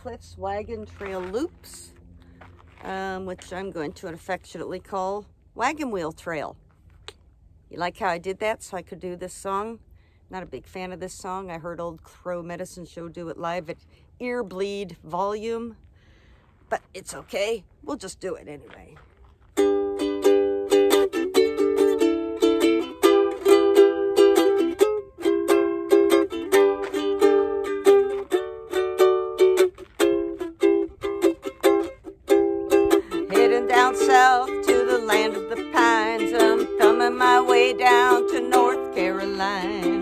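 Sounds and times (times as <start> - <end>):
strummed chords on small string instrument: 19.6 - 40.0.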